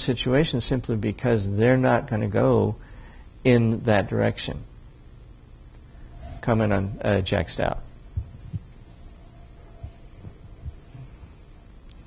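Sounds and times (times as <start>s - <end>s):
quiet room hiss: 0.0s - 12.0s
microphone handling thumps: 8.1s - 8.8s.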